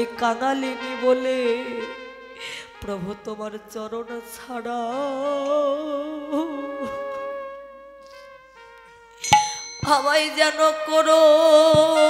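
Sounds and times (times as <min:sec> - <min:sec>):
woman singing: 0:00.0 - 0:02.1, 0:02.7 - 0:07.4, 0:09.8 - 0:12.0
held accompaniment tones: 0:08.6 - 0:12.0.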